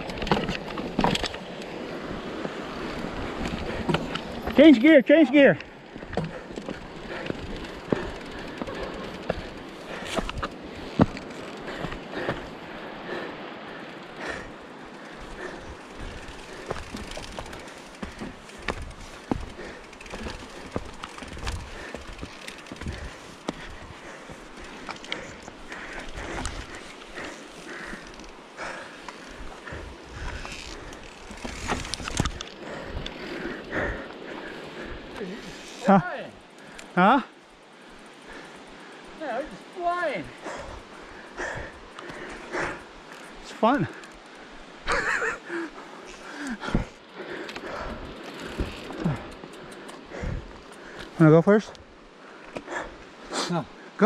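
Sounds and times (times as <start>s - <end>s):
bike rattling over rocks: 0.0s - 12.6s, 13.9s - 36.2s, 41.4s - 51.4s
bike tyres rushing over dirt: 0.0s - 36.9s, 37.7s - 54.0s.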